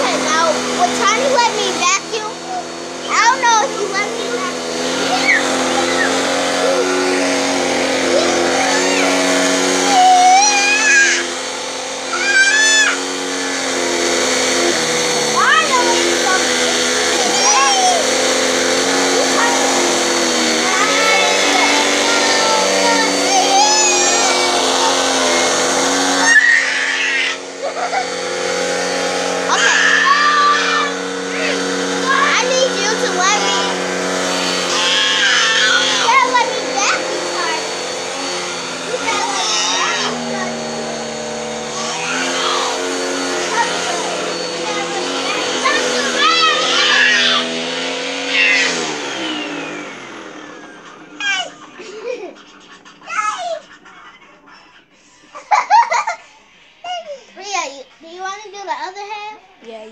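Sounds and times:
vacuum cleaner on carpet: 0:00.0 - 0:59.9
small child babbling and squealing: 0:05.0 - 0:06.8, 0:08.1 - 0:11.3, 0:12.1 - 0:13.1, 0:17.2 - 0:18.1, 0:22.2 - 0:25.0, 0:26.2 - 0:28.1, 0:29.5 - 0:33.7, 0:34.7 - 0:37.6, 0:38.9 - 0:40.6, 0:41.7 - 0:42.8, 0:44.7 - 0:47.5, 0:48.3 - 0:49.5, 0:51.2 - 0:52.0, 0:53.0 - 0:53.8.

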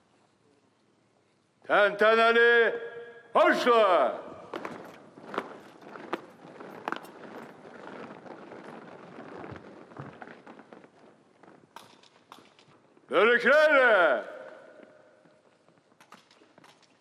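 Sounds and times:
marching boots on asphalt: 0:04.3 - 0:13.0.

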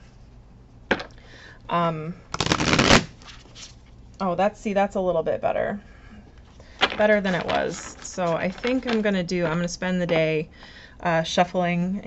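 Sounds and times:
cards riffle-shuffled: 0:02.4 - 0:03.7.

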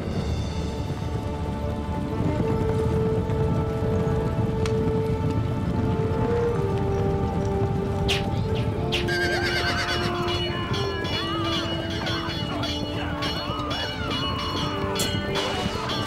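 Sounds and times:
film score of held notes: 0:00.0 - 0:16.0
horses galloping: 0:00.0 - 0:16.0
horses whinnying: 0:08.0 - 0:16.0.

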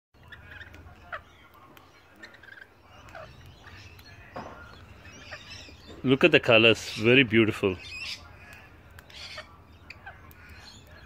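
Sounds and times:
lorikeets chirping: 0:00.2 - 0:11.0.

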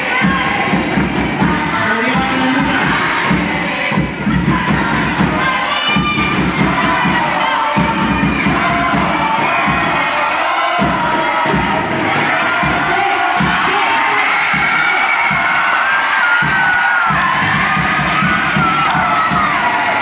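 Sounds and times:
crowd cheering and shouting: 0:00.0 - 0:20.0.

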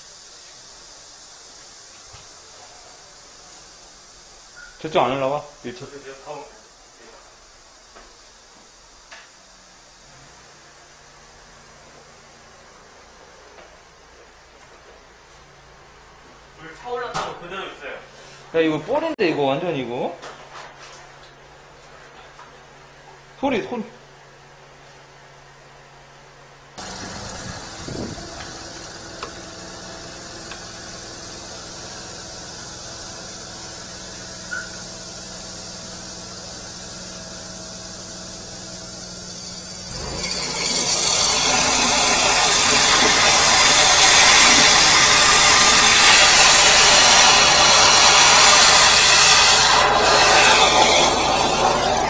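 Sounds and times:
water jet rushing hiss: 0:00.0 - 0:06.4, 0:26.8 - 0:52.0
engine running: 0:26.8 - 0:52.0.

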